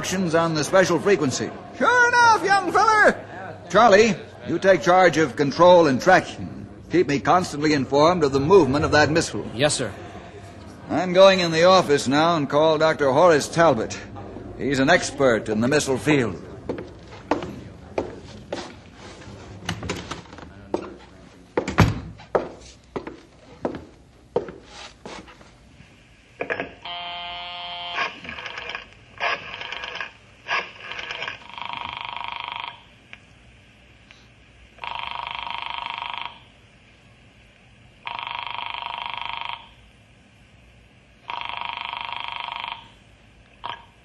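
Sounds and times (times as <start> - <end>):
telephone ringing: 26.4 - 32.9, 34.8 - 36.5, 38.0 - 39.8, 41.2 - 43.0, 43.6 - 44.0.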